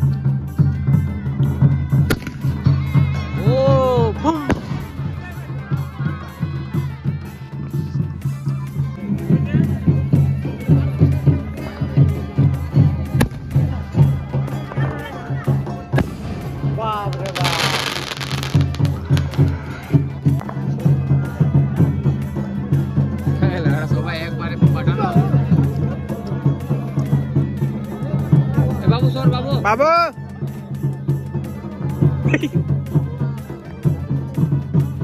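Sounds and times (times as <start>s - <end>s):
music with steady beat: 0.0s - 35.0s
firework bang: 2.1s - 2.6s, 16.0s - 19.6s.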